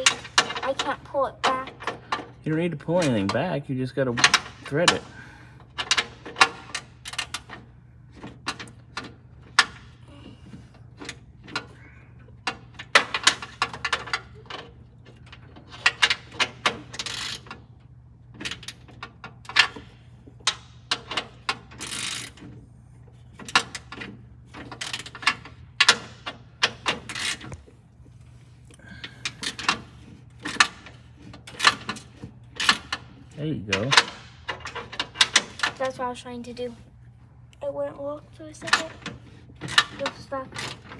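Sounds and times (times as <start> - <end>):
steady low hum: 0.0 - 40.9.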